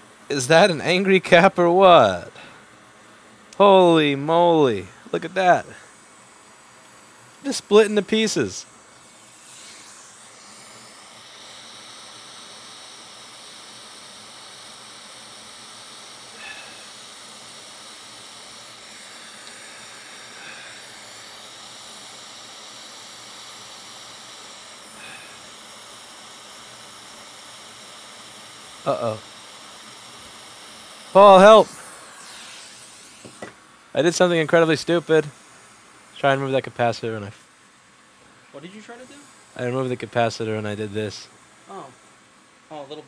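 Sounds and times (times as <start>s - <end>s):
hot air station blowing: 0.0s - 43.0s.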